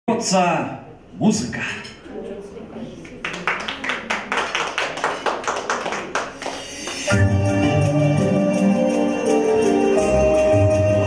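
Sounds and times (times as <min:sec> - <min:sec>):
fast handclaps: 0:03.1 - 0:07.1.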